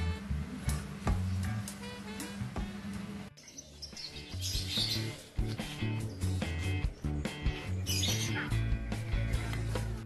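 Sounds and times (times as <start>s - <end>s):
background music: 0.0s - 10.0s
soft musical backing: 0.0s - 10.0s
small birds chirping: 1.1s - 10.0s.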